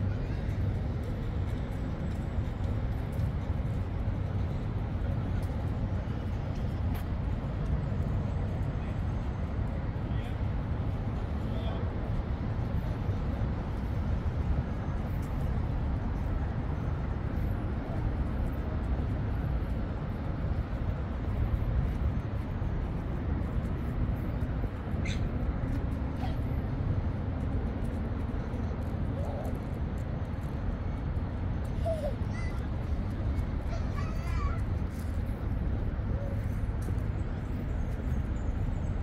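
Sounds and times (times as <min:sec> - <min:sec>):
city ambience rumble: 0:00.0 - 0:39.0.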